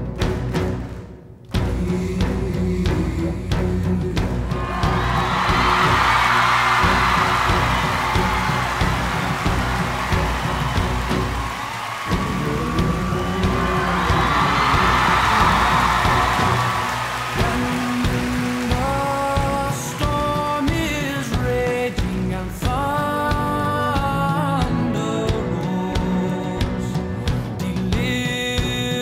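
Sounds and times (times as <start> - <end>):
live band music with drums: 1.6 - 29.0.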